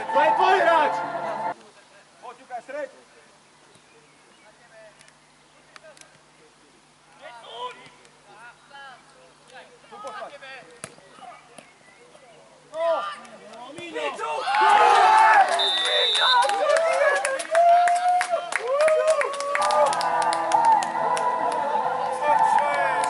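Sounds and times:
crowd cheering: 0.0 - 1.5, 14.0 - 23.0
players shouting: 0.0 - 1.5, 12.7 - 23.0
clapping: 14.5 - 21.6.

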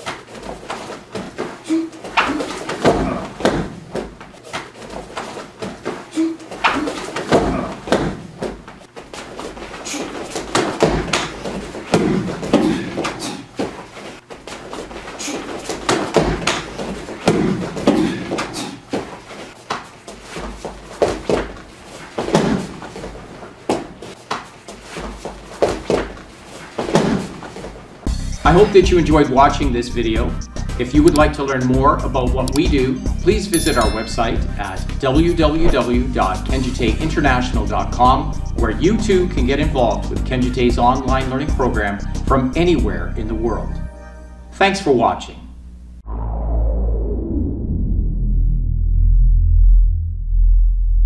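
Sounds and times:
thuds and slaps on foam mats: 2.1 - 6.0, 6.6 - 8.8, 10.3 - 13.8, 15.7 - 19.1, 22.2 - 23.1, 26.8 - 27.8
body falling onto mat: 15.7 - 18.2.

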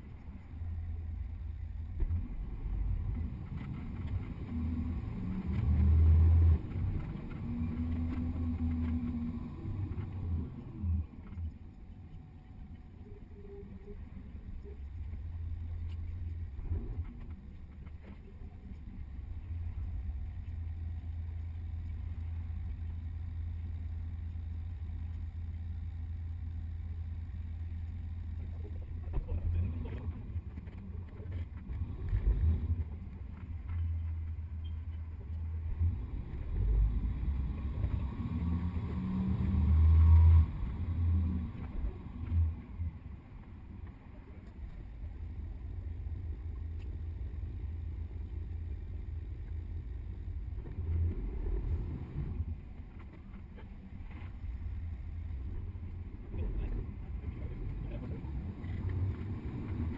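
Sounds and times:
bus engine drone: 0.0 - 59.9
road noise: 0.0 - 59.9.

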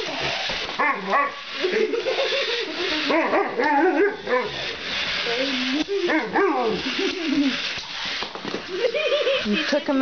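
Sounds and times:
dog yipping and whining: 3.0 - 4.7.

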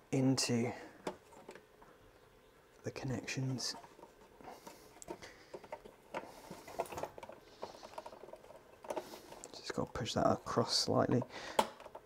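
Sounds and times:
cables clicking and rustling: 0.9 - 2.0, 2.7 - 12.0.

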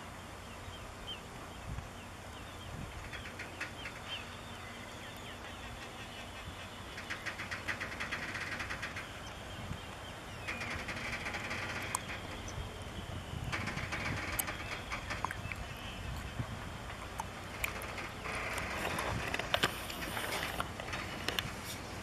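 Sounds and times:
freight train rolling slowly: 0.0 - 22.0
rapid clicking: 6.9 - 9.4, 10.4 - 12.6, 13.5 - 15.6.

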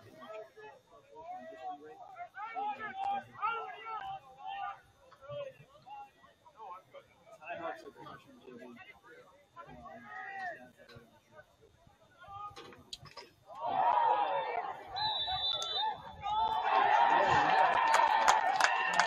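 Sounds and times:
crowd shouting and cheering: 13.5 - 19.0.

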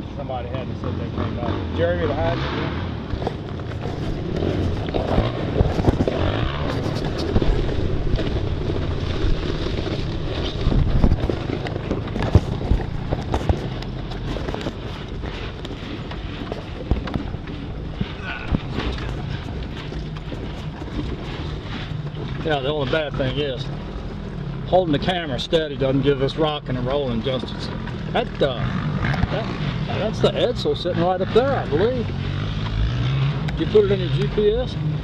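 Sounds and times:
vehicle engine running low: 0.0 - 35.0
body and gear rattling: 3.0 - 35.0.

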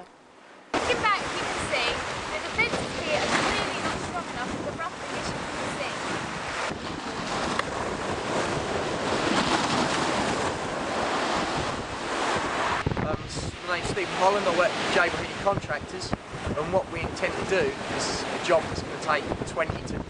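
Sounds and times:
waves breaking against a sea wall: 0.7 - 20.0
wind buffeting microphone: 0.7 - 20.0.

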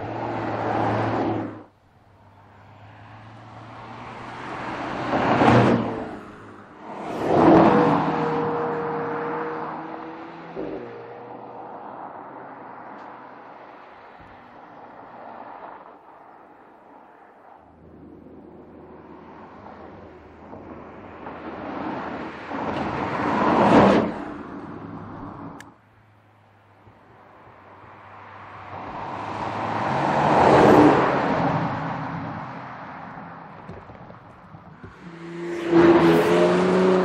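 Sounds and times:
engine and tyre noise: 0.0 - 37.0
tyre and wind noise: 33.0 - 35.1
car driving past: 34.8 - 37.0.

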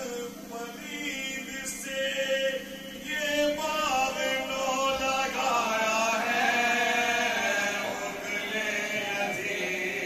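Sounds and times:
lead voice into a microphone: 0.0 - 10.0
men chanting an elegy: 5.4 - 10.0.

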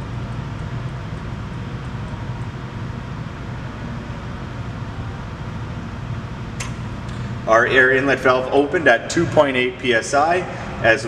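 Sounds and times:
low hum with hiss: 0.0 - 11.0
sharp click: 6.6 - 7.2.

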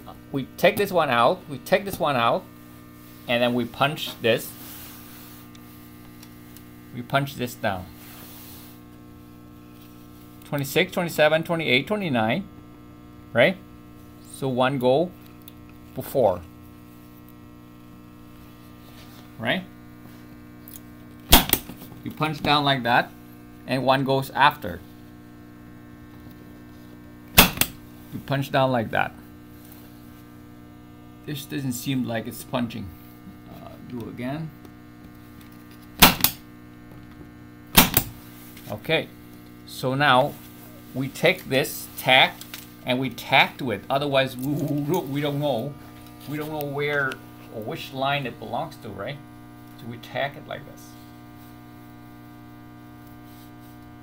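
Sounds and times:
electrical mains hum: 0.0 - 54.0
punch-down tool snapping: 21.3 - 21.8, 27.3 - 27.8, 36.0 - 36.4, 37.8 - 38.2.

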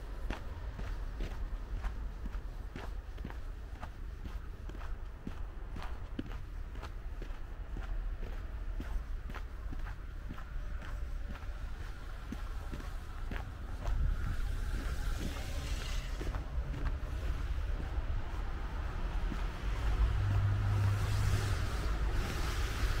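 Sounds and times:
car traffic passing: 0.0 - 23.0
footsteps on packed snow: 0.0 - 23.0
steady low rumble: 0.0 - 23.0.

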